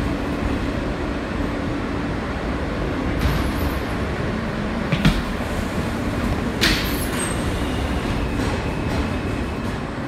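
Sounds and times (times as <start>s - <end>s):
subway car rumbling on track: 0.0s - 10.0s.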